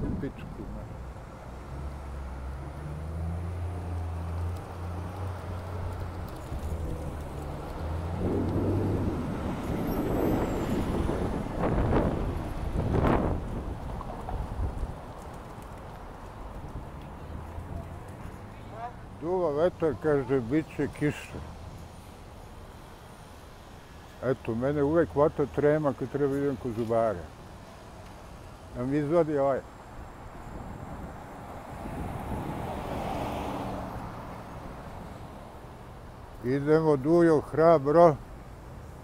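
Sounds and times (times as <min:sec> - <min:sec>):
vehicles passing: 0:00.0 - 0:39.0.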